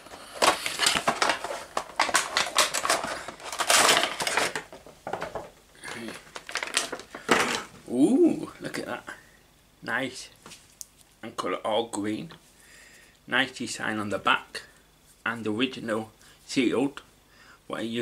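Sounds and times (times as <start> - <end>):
plastic insert crackling: 0.3 - 7.7.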